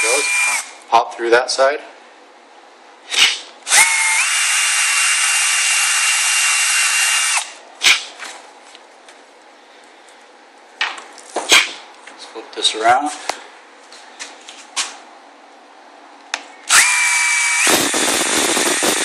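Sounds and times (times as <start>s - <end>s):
cordless drill whining: 0.0s - 0.8s, 3.7s - 7.6s, 16.7s - 19.0s.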